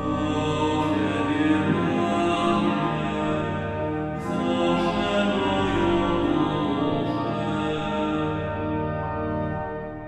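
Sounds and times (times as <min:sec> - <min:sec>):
pipe organ playing slow chords: 0:00.0 - 0:10.0.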